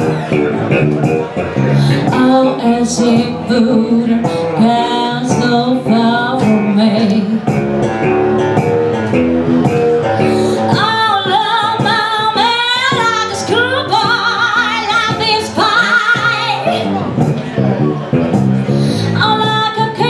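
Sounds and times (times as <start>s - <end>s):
blues guitar picking: 0.0s - 20.0s
woman singing with vibrato: 1.9s - 7.5s, 10.5s - 16.9s, 19.0s - 20.0s.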